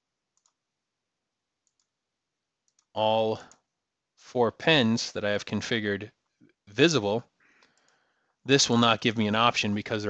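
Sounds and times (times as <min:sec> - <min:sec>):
computer mouse clicks: 0:00.4 - 0:00.6, 0:01.6 - 0:01.9, 0:02.6 - 0:02.9, 0:07.6 - 0:08.0.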